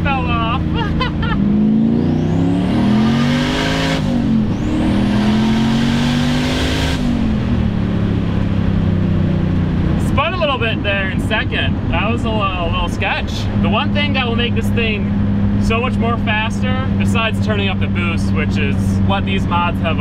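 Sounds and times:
car engine revving through gears: 1.0 - 9.2.

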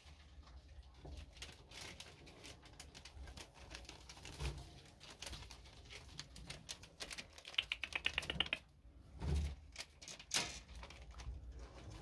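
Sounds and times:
rats scrabbling through paper: 0.0 - 12.0.

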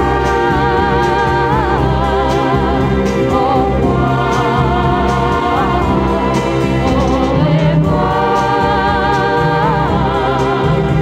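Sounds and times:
beat-pop record playing: 0.0 - 11.0.

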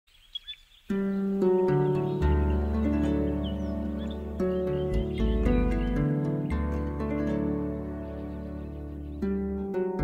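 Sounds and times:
faint bird chirps: 0.1 - 6.5
harp plucked notes: 0.9 - 10.0.

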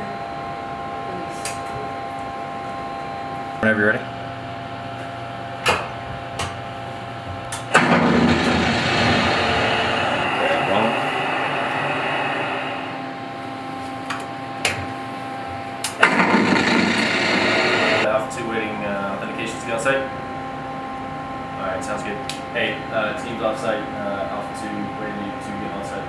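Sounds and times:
machinery rushing noise: 7.7 - 13.8, 15.9 - 18.1.

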